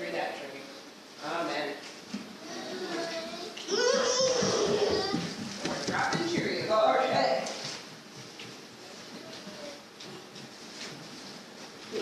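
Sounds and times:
child's voice: 2.4s - 5.3s
light knocks of movement: 4.2s - 12.0s.

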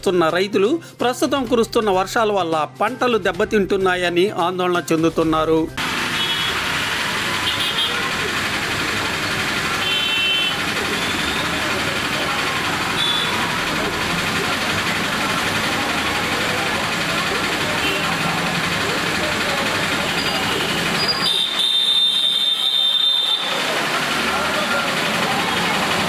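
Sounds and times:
traffic on wet road: 5.8s - 26.0s.

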